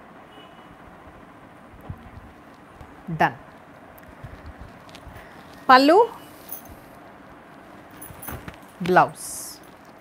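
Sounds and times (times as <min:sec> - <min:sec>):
low room background noise: 0:00.0 - 0:10.0.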